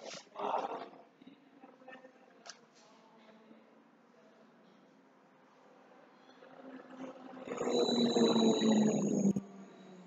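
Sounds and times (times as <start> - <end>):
faint room sounds: 0.0 - 8.6.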